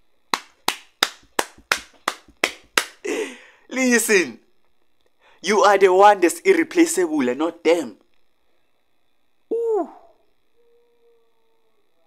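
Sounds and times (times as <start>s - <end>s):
person clapping hands: 0.3s - 3.3s.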